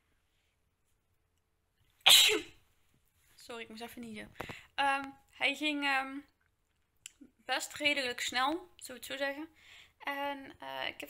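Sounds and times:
woman sneezing: 2.0 - 2.6.

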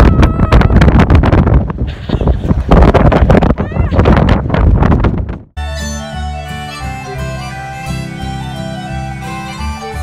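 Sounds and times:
wind buffeting microphone: 0.0 - 5.6
music with held notes: 5.6 - 10.0.

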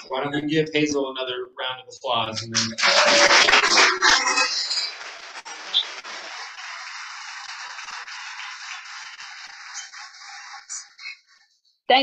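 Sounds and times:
audience applauding: 2.4 - 11.1.

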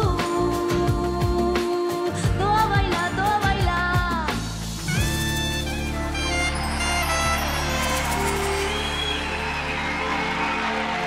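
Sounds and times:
acoustic band playing: 0.0 - 11.0
audience cheering: 5.8 - 11.0.

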